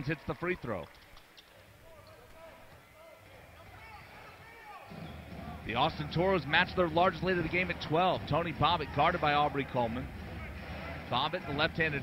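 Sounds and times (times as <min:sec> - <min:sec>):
distant crowd voices: 0:01.1 - 0:12.0.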